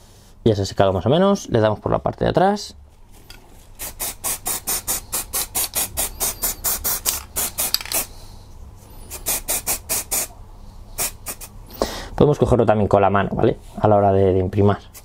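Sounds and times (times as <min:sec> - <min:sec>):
spray can hissing bursts: 0:03.8 - 0:08.1, 0:09.0 - 0:10.3, 0:11.0 - 0:11.5.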